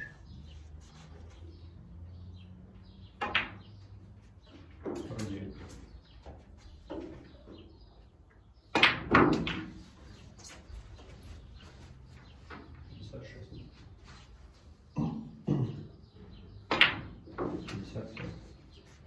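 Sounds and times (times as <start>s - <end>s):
snooker balls clacking: 8.8s - 9.9s, 16.7s - 18.4s.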